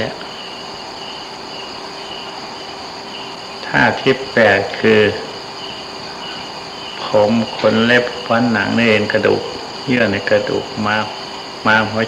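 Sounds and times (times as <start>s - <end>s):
tape hiss: 0.0s - 12.0s.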